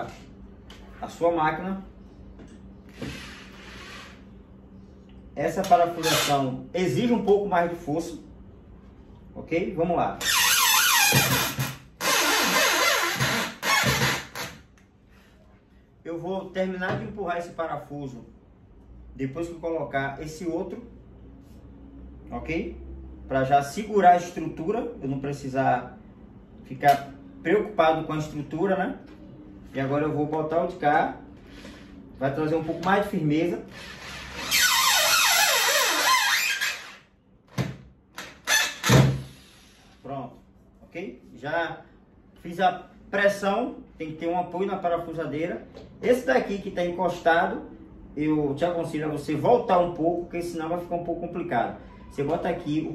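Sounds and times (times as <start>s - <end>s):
electric drill driving screw: 33.7s - 34.7s.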